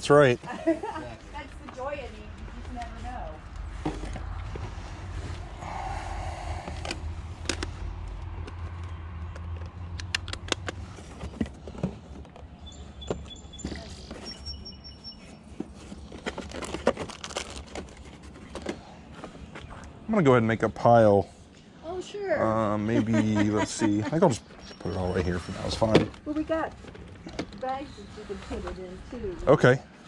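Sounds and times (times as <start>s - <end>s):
low rumble: 1.5s - 11.2s
objects clicking and knocking: 6.7s - 14.3s.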